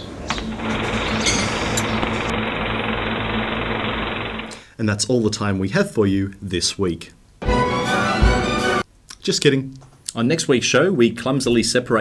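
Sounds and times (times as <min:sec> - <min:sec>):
low hum: 0:00.0 - 0:04.6
rapid mechanical rattle: 0:00.4 - 0:04.6.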